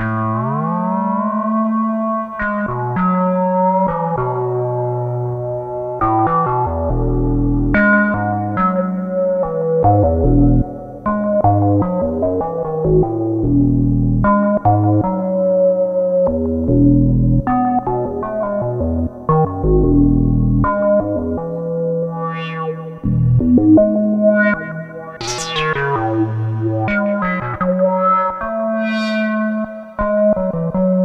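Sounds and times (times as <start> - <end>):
low synth bass notes: 0.0 - 31.0
synthesizer melody: 24.5 - 30.5.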